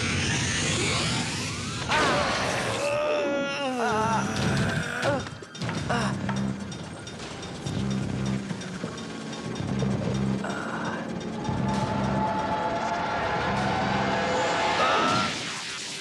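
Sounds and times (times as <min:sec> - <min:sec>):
metallic mechanical clanking: 0:04.4 - 0:14.2
repeating low pulse: 0:09.4 - 0:15.3.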